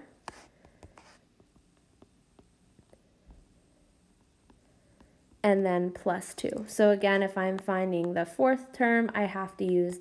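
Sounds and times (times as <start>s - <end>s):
stylus tapping and scratching screen: 0.0s - 10.0s.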